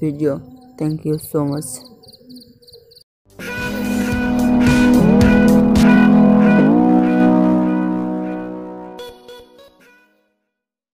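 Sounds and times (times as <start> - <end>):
insect chirping: 0.4 - 3.0.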